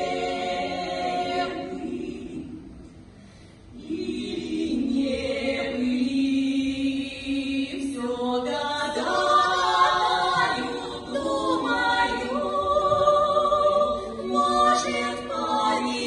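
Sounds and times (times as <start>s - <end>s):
women singing in harmony: 0.0s - 2.9s, 3.7s - 16.0s.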